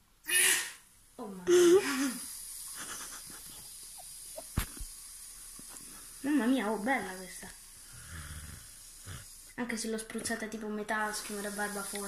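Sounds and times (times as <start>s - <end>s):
aerosol can spraying foam: 1.8s - 12.0s.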